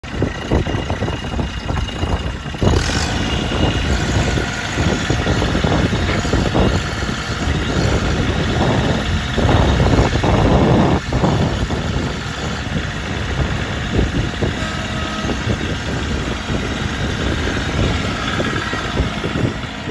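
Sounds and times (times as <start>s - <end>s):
tractor engine idling: 0.0s - 19.9s.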